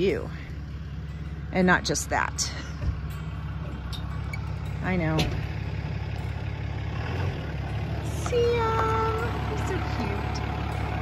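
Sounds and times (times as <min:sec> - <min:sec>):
pickup engine idling: 0:00.0 - 0:11.0.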